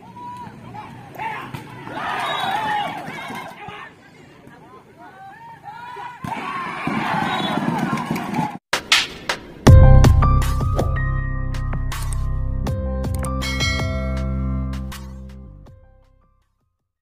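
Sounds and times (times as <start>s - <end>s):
spectators shouting and cheering: 0.0s - 8.6s.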